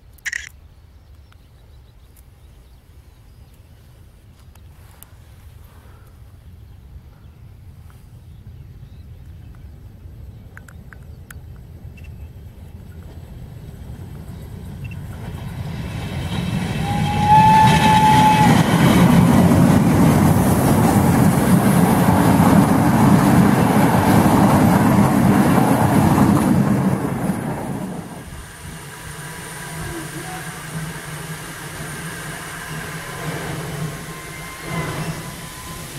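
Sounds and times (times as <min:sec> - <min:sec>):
steam locomotive passing: 0:09.7 - 0:35.9
steam whistle blast: 0:16.8 - 0:18.9, 0:33.8 - 0:35.9.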